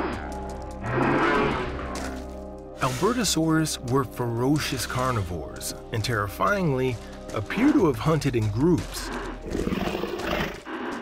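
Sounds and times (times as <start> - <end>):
dinosaur roar: 0.8 - 1.9, 9.4 - 10.8.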